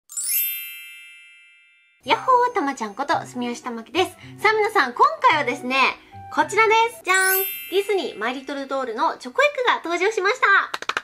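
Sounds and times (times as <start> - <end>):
bright bell-like chime: 0.1 - 3.6, 7.0 - 9.5.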